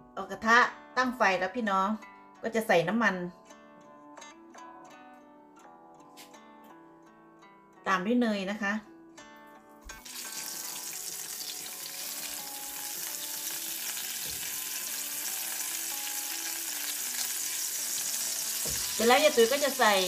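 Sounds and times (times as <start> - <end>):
butter sizzling in a frying pan: 9.9 - 20.0.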